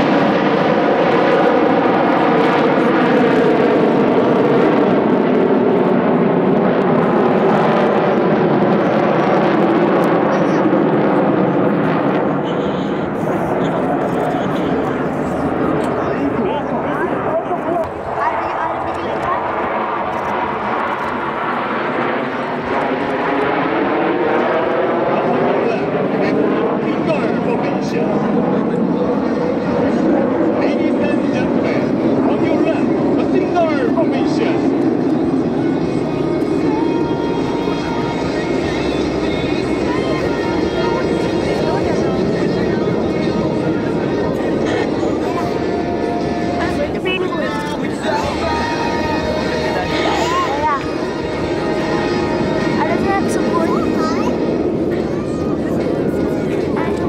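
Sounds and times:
jet engines roaring overhead: 0.0s - 57.0s.

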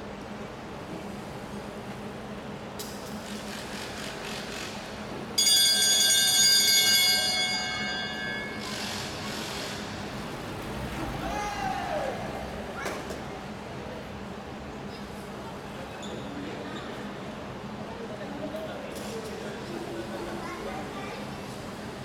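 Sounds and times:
lap bell ringing: 5.4s - 9.3s.

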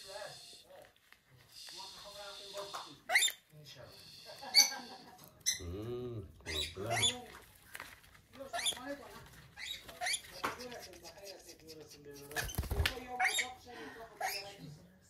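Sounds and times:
parrot screeching and chattering: 1.5s - 5.7s, 6.4s - 7.4s, 8.4s - 13.6s, 14.2s - 14.6s.

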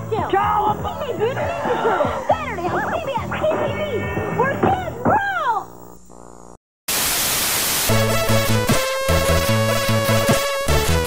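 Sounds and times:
music: 0.0s - 5.1s, 7.9s - 11.0s
videotape static hum: 0.0s - 8.0s
white noise hiss: 6.9s - 8.1s.

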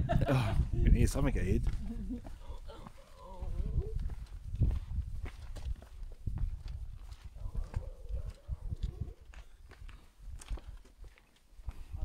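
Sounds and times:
footsteps on sandy dirt trail: 1.2s - 12.0s.

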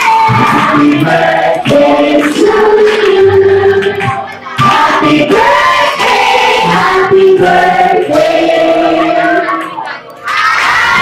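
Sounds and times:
children shouting and singing: 0.0s - 0.5s, 8.7s - 11.0s
party song with singing: 0.0s - 11.0s.

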